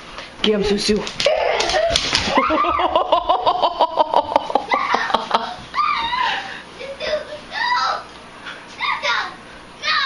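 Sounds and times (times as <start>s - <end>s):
person laughing: 1.3s - 6.5s.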